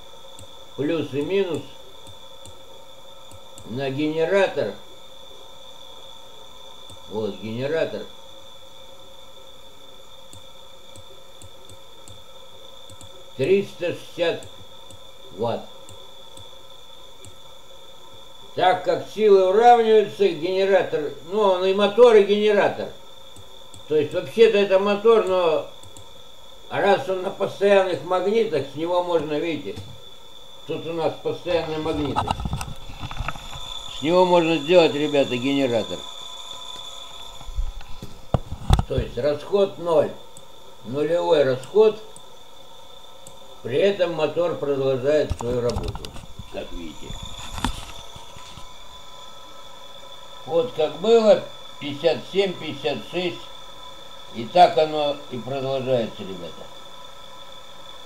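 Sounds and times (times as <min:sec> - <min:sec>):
faint hum: 0:00.0 - 0:58.0
high-pitched electrical whine: 0:00.0 - 0:58.0.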